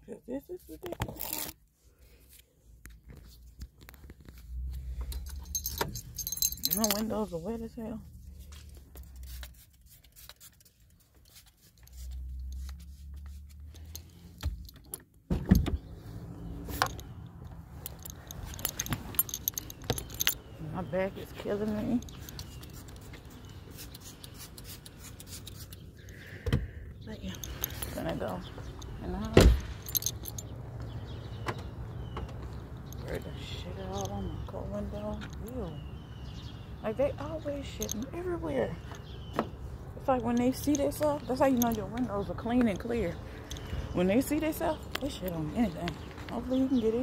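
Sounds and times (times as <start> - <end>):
light clicks and rattles: 2.8 - 7.6, 16.7 - 23.6, 27.2 - 30.5, 40.0 - 47.0
keys jangling: 5.0 - 7.6, 13.6 - 15.0, 16.6 - 20.9, 21.5 - 23.6, 27.3 - 31.2, 40.2 - 45.6.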